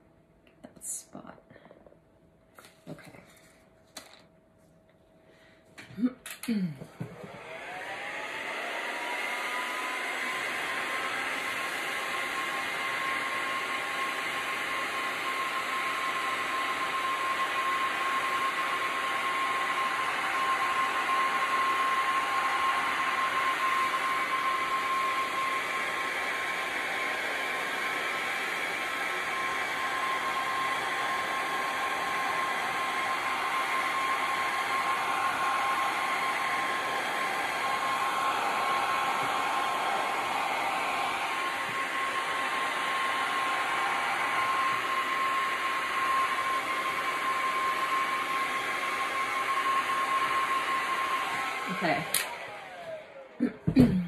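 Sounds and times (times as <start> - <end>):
heat gun blowing air: 6.5 - 54.0.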